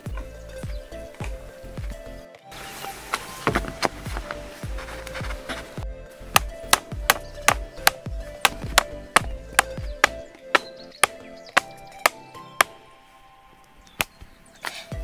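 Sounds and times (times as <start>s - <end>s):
background music with beat: 0.0s - 13.7s.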